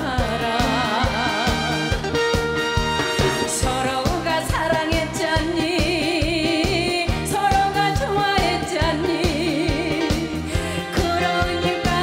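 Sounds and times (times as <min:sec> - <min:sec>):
woman singing with vibrato: 0:00.0 - 0:02.0, 0:03.4 - 0:12.0
band accompaniment with steady beat: 0:00.0 - 0:12.0.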